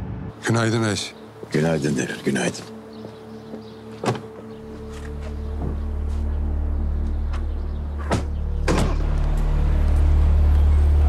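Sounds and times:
background music: 0:00.0 - 0:11.0
low deep drone: 0:04.5 - 0:11.0.

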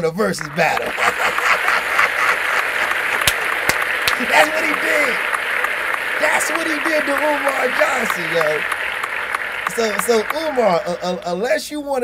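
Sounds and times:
crowd applause: 0:00.3 - 0:11.5.

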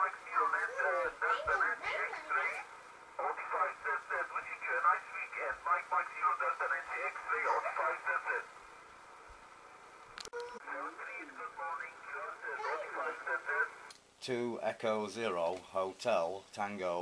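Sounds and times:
radio voice: 0:00.0 - 0:02.6, 0:03.2 - 0:08.5, 0:10.6 - 0:13.8
radio receiver hiss: 0:00.0 - 0:14.4.

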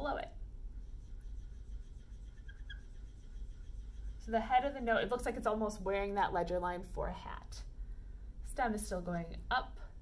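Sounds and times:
low room hum: 0:00.0 - 0:10.0
marker squeaking on whiteboard: 0:00.8 - 0:04.7.

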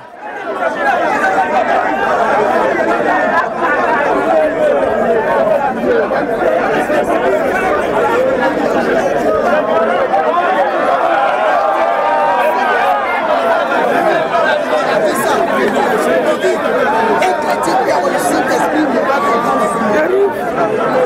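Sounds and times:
overlapping voices talking: 0:00.0 - 0:21.0.

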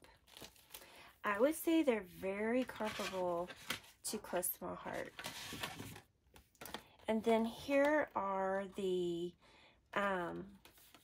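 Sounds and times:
paper and card rustling: 0:02.0 - 0:04.2, 0:04.8 - 0:06.8, 0:10.5 - 0:11.0.

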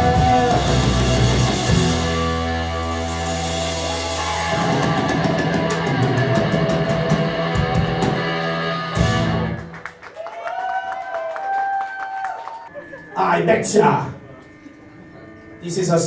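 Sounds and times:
punk rock band playing: 0:00.0 - 0:09.9
sustained guitar tone ringing: 0:12.7 - 0:16.0.

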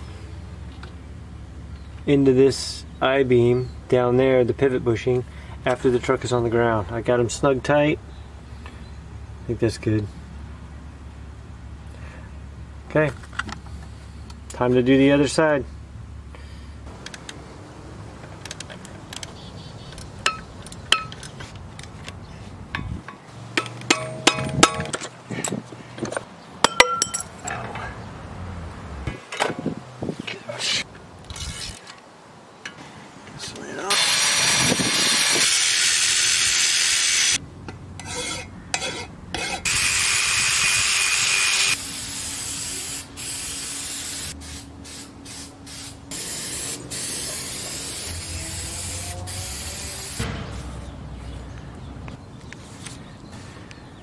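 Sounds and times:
metallic clinks and knocks: 0:20.0 - 0:22.0, 0:22.7 - 0:27.9.

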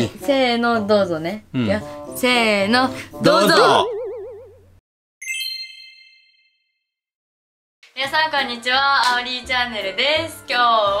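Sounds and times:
wobbling warbling tone: 0:03.5 - 0:06.4
bright chime: 0:05.2 - 0:06.6.

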